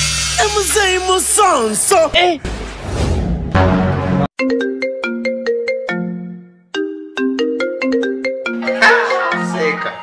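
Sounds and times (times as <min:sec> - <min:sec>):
marimba phone ringtone: 0:04.4 - 0:10.0.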